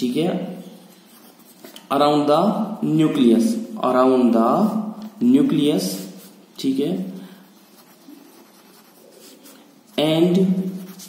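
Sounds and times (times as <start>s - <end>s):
pen scratching on paper: 7.5s - 10.0s, 10.6s - 11.0s.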